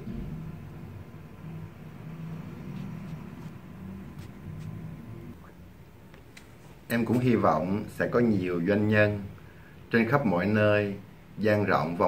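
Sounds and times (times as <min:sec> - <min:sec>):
low machinery hum: 0:00.0 - 0:09.8.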